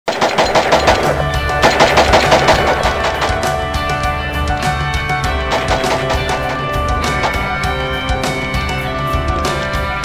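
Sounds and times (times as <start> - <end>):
rapid rifle fire: 0.1 - 3.6, 5.4 - 6.6
intro music with bass: 3.4 - 10.0.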